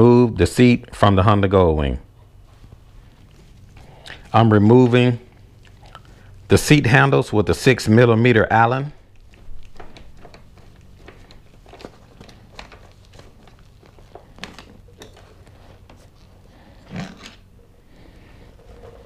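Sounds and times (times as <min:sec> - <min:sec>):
steady low hum: 0:00.0 - 0:19.0
faint clicks and rustles: 0:02.1 - 0:06.5, 0:09.0 - 0:19.0.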